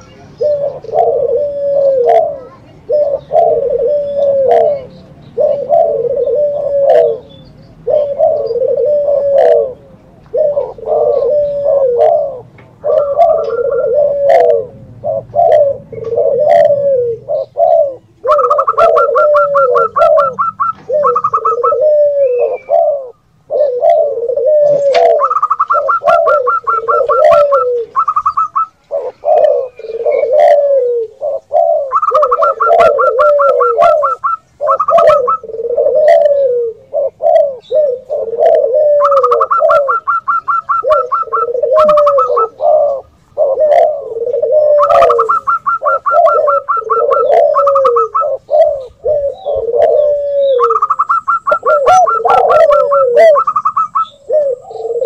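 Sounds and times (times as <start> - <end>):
doves cooing: 0.0 - 55.0.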